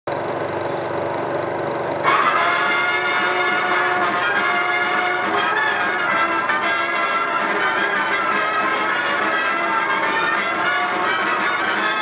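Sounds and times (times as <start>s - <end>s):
film soundtrack buzzing hum: 0.1s - 12.0s
film title music: 2.0s - 12.0s.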